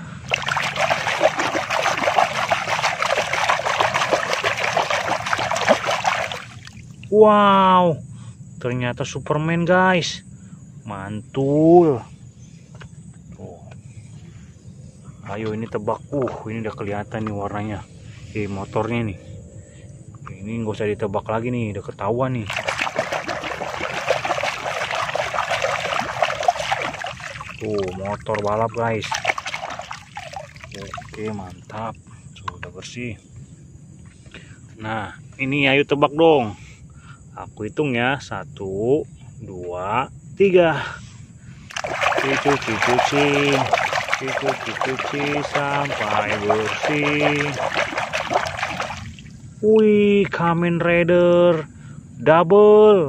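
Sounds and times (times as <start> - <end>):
muddy water splashing: 0.2 - 7.0, 22.5 - 31.8, 41.7 - 49.4.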